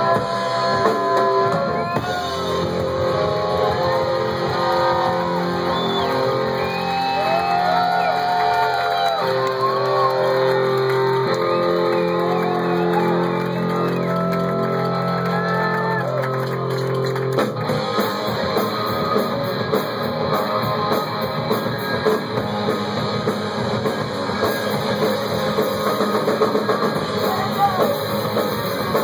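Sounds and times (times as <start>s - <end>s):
loud electric guitar chords: 0.0s - 29.0s
punk rock band playing live: 0.0s - 29.0s.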